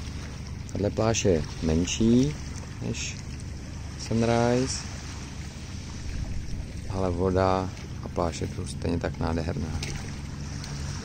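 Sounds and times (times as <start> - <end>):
sea gently lapping: 0.0 - 11.0
wind on microphone: 5.8 - 7.8.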